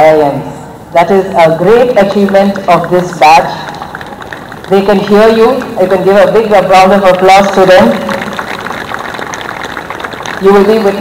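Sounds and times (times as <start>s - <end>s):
audience applauding: 3.6s - 5.8s, 7.0s - 11.0s.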